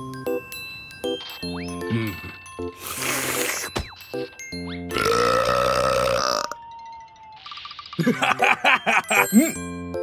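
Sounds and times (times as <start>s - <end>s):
cartoon burp: 4.9s - 6.6s
light background music: 6.3s - 10.0s.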